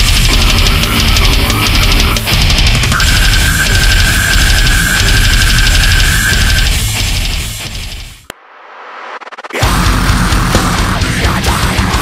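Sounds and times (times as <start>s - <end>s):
rapid drumming: 0.0s - 8.3s, 9.1s - 12.0s
heavy distorted guitars: 0.0s - 12.0s.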